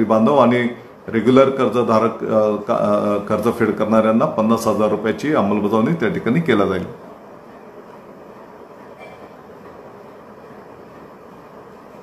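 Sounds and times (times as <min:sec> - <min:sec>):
low rumble with hiss: 0:00.0 - 0:08.6.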